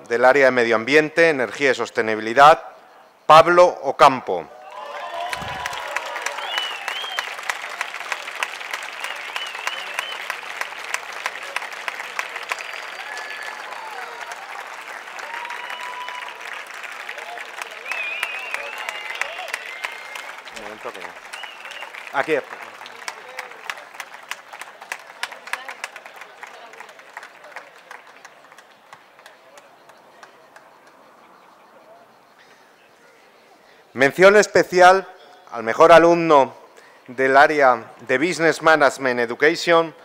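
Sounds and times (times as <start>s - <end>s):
audience applauding: 4.6s - 31.0s.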